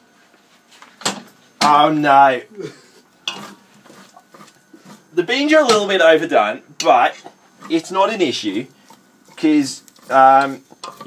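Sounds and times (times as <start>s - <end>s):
metal spoon scraping saucepan: 3.2s - 6.0s, 6.8s - 11.0s.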